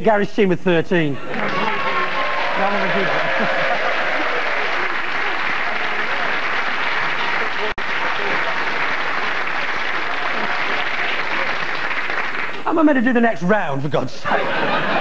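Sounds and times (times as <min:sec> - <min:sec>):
audience laughing: 0:01.1 - 0:12.6, 0:14.2 - 0:15.0
studio audience applauding: 0:01.2 - 0:13.0.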